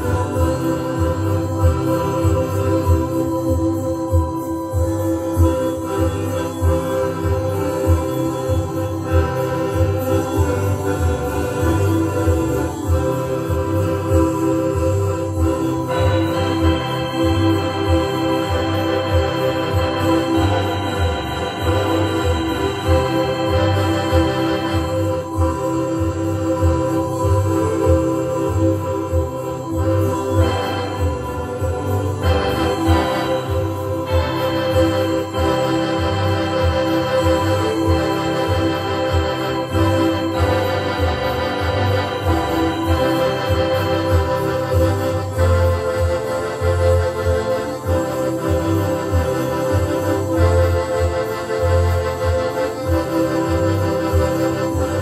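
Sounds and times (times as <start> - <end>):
organ-like keyboard chords: 0.0 - 55.0
pulsing bass line: 0.0 - 55.0.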